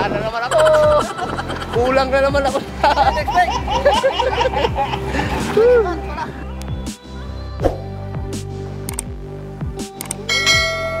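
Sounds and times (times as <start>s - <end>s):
outro music with steady beat: 0.0s - 11.0s.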